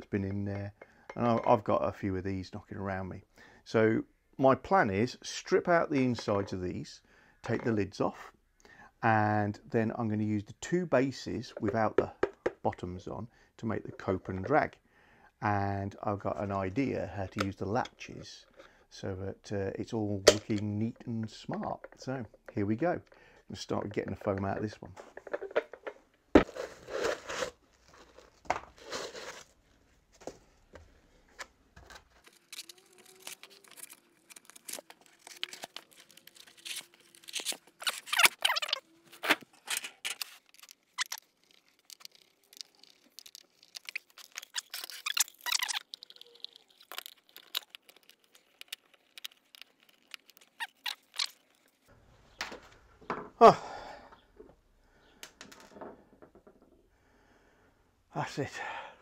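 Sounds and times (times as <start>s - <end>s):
clicks and knocks of wood and metal: 24.3s - 28.8s, 55.2s - 56.8s
foam tearing and crunching: 32.2s - 51.9s.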